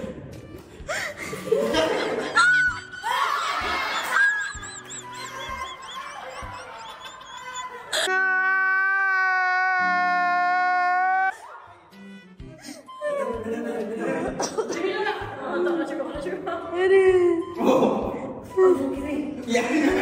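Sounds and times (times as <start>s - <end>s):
people laughing and shrieking: 1.5s - 11.6s
man's drawn-out crying wail: 4.1s - 11.3s.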